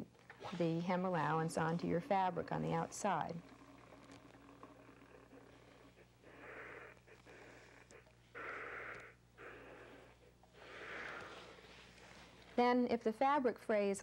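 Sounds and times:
low mains hum: 0.0 - 14.0.

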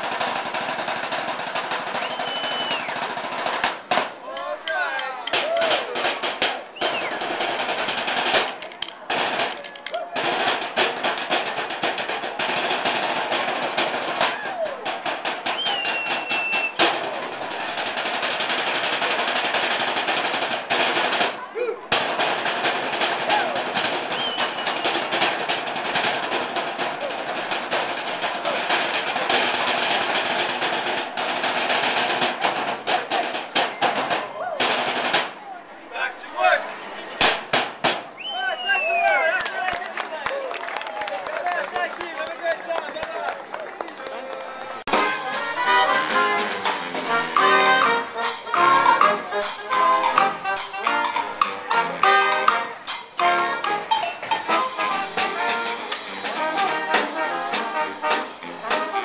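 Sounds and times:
drumsticks on metal trash cans: 3.4 - 35.4, 46.0 - 59.0.

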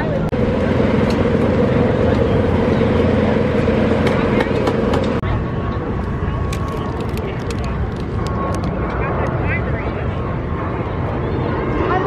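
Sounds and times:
people talking outdoors: 0.0 - 12.0
steady mechanical hum: 0.0 - 12.0.

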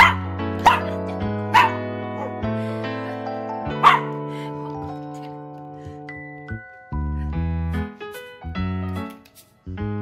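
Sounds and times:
small dog barking: 0.0 - 2.3, 3.8 - 4.1
background music: 0.0 - 10.0.

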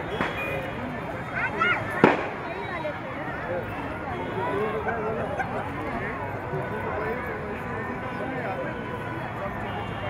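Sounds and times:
crowd chatter: 0.0 - 10.0
firecracker bang: 0.1 - 0.6, 1.9 - 2.5.

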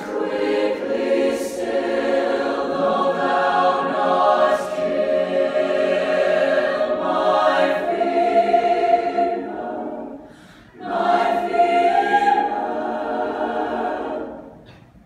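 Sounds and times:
choir singing unaccompanied chords: 0.0 - 14.7.

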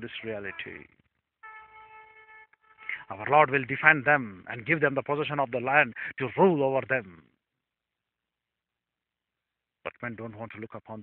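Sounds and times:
steady pitched tone: 0.0 - 2.9.

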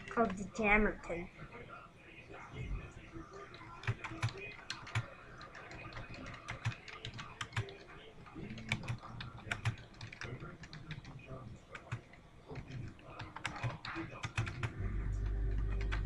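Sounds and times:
typing on a keyboard: 3.5 - 16.0.

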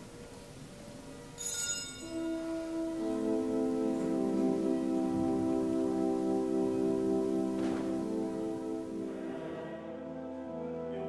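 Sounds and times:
altar bells ringing: 1.2 - 9.2.

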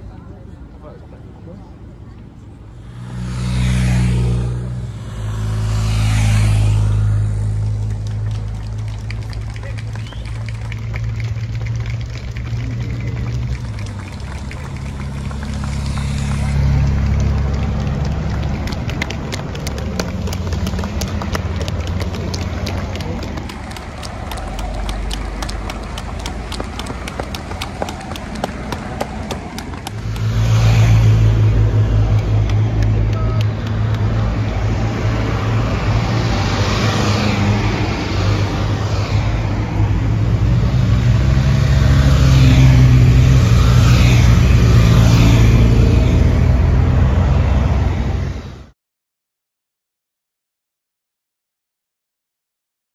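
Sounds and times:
street hum: 0.0 - 48.7
cars passing by: 0.0 - 48.8.

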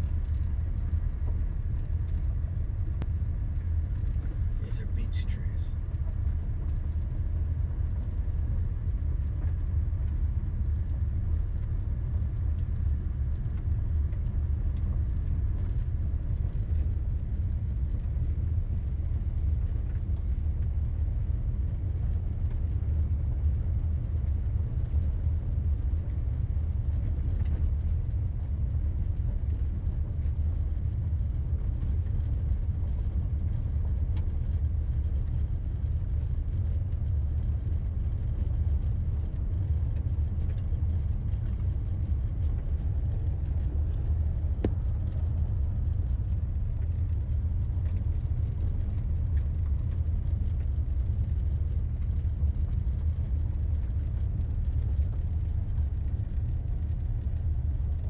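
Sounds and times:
car rumbling on unpaved road: 0.0 - 58.0.

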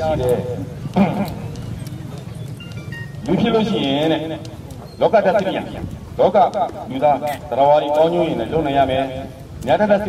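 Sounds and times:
man speaking over megaphone: 0.0 - 1.3, 3.2 - 4.4, 5.0 - 10.0.

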